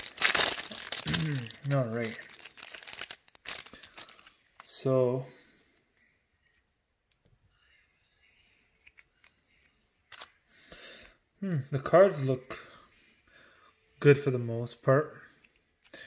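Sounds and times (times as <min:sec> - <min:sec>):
cards rustling and ticking: 0:00.0 - 0:04.8
plastic wrap crinkling and tearing: 0:00.0 - 0:04.8
person humming: 0:01.0 - 0:01.7.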